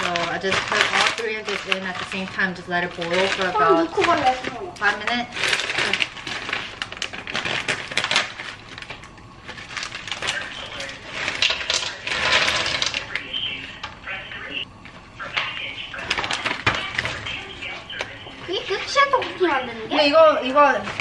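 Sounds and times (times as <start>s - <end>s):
plastic bag rustling and crinkling: 0.0s - 13.9s, 15.4s - 21.0s.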